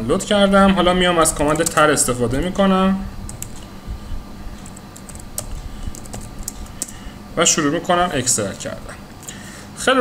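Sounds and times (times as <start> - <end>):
keyboard keystrokes clicking: 1.4 - 2.4, 3.3 - 3.6, 4.6 - 7.0.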